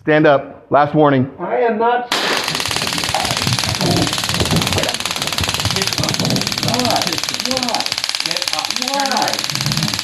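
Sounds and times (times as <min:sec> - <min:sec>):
taser electric clicking: 0:02.1 - 0:10.0.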